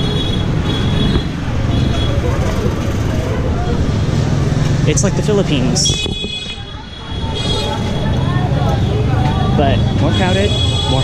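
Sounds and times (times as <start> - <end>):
traffic rumble: 0.0 - 11.0
voices of passers-by: 0.0 - 11.0.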